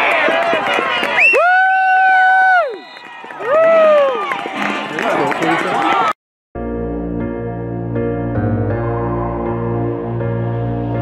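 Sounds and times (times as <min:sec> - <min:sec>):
crowd voices: 0:04.2 - 0:06.2.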